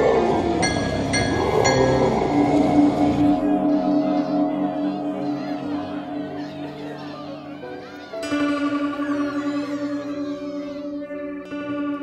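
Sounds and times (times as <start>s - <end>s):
sustained instrumental music: 0.0s - 12.0s.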